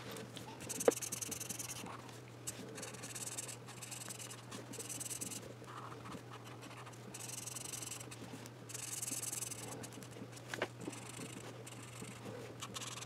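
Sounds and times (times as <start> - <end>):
marker scratching on paper: 0.6 - 10.2, 10.8 - 13.0.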